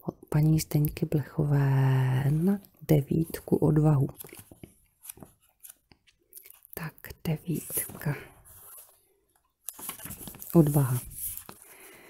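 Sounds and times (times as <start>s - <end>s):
book pages turning: 3.1s - 6.7s, 7.5s - 12.0s.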